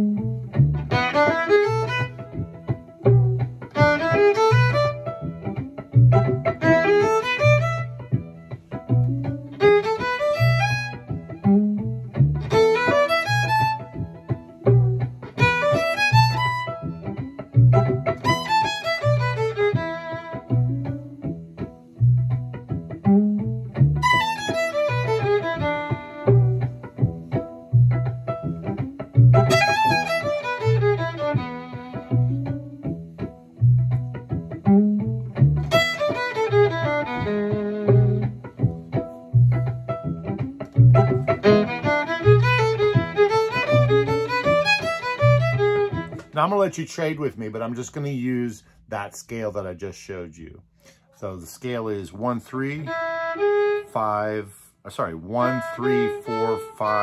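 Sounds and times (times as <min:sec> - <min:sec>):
fiddle playing fast runs: 0:00.9 - 0:05.3, 0:06.0 - 0:08.2, 0:09.0 - 0:11.2, 0:12.5 - 0:17.0, 0:17.6 - 0:20.7, 0:24.0 - 0:26.7, 0:29.2 - 0:32.5, 0:35.6 - 0:38.4, 0:40.7 - 0:47.2, 0:52.4 - 0:54.4, 0:55.3 - 0:57.0.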